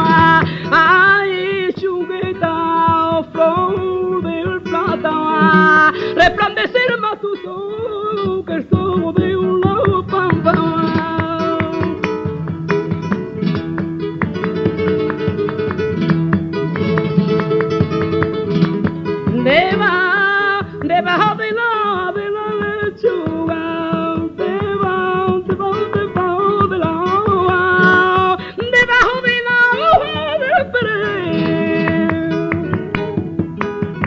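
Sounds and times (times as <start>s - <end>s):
woman singing: 0.0s - 12.6s, 17.0s - 34.0s
flamenco guitar strumming: 0.0s - 34.0s.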